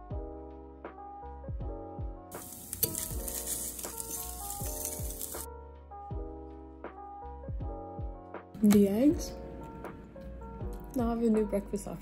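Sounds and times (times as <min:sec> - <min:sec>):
background music with a beat: 0:00.0 - 0:02.4, 0:03.1 - 0:08.9
eggs sizzling in a frying pan: 0:02.3 - 0:05.5
fork scraping a pan: 0:02.4 - 0:05.5
fork clicking against pan: 0:02.7 - 0:05.4.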